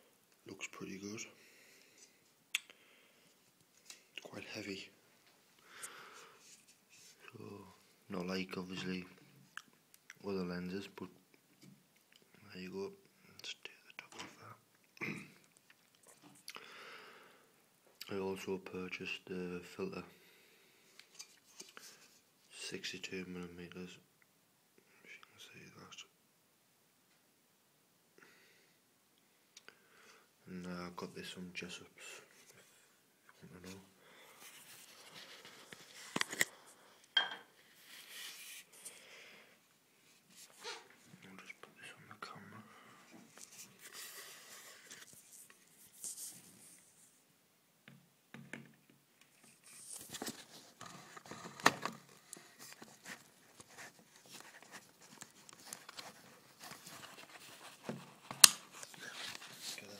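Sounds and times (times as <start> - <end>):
faint whispered word: 4.1 - 5.0, 12.4 - 14.6, 24.8 - 26.1, 40.6 - 43.6.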